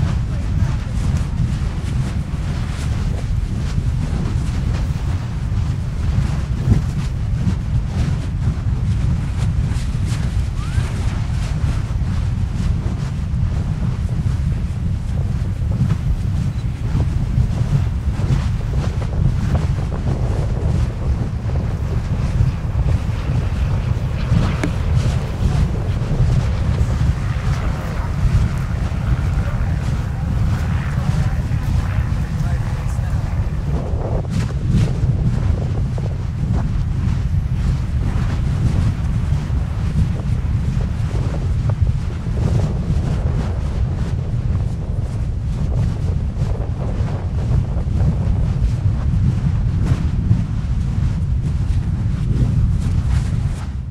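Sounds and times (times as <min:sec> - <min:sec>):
lava deep rumble: 0:00.0 - 0:53.9
wind buffeting microphone: 0:00.0 - 0:53.9.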